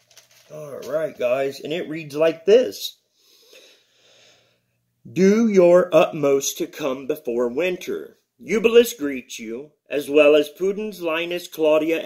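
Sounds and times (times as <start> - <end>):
faint breaths: 3.0 - 5.0.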